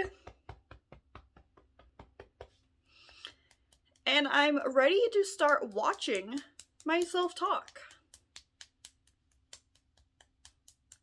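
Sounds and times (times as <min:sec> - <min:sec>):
fingertip taps on body: 0:00.0 - 0:02.6.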